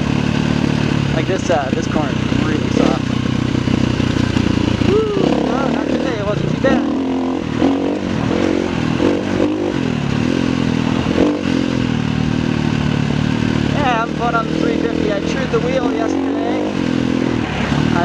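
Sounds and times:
bike knocking and rattling: 0.0s - 4.9s
dirt bike engine revving: 0.0s - 18.0s.

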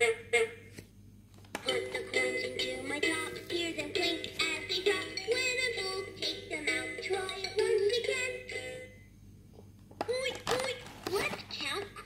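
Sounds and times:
toy speaker playing a song: 1.6s - 9.0s.

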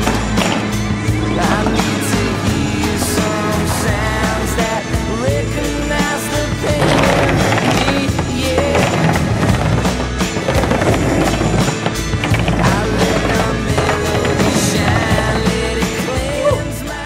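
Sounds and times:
music with a steady beat: 0.0s - 17.0s
skateboard wheels rolling on concrete: 0.0s - 17.0s.

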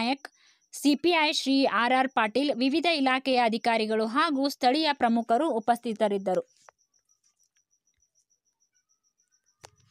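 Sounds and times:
insect chirping rapidly: 0.0s - 9.9s.

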